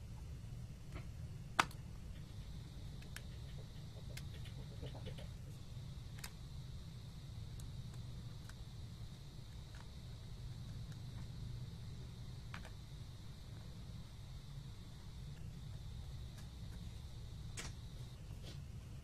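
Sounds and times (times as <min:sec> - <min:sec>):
low hum with high whine: 0:00.0 - 0:19.0.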